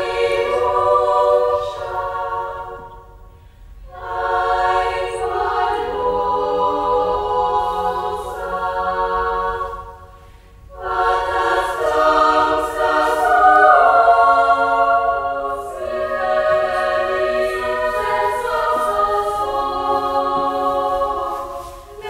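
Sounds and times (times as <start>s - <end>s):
women's choir singing a cappella: 0.0s - 22.0s.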